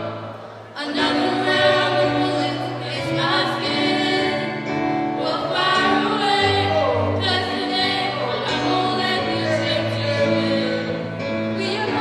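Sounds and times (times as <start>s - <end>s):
group singing in harmony: 0.0s - 12.0s.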